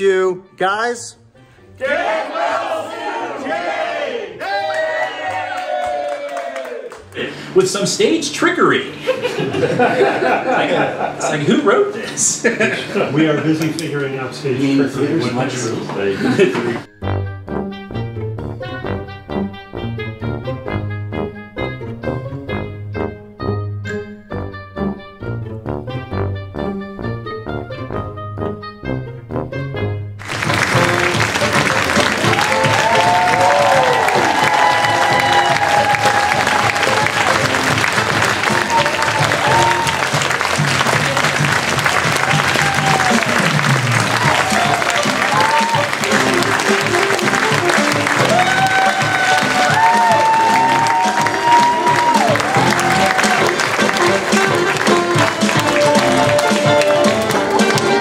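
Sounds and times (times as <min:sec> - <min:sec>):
audience applauding: 0:04.4 - 0:07.7, 0:30.2 - 0:58.0
music underneath: 0:07.0 - 0:58.0
whoops and calls: 0:32.4 - 0:37.0, 0:38.6 - 0:40.0, 0:48.2 - 0:53.5.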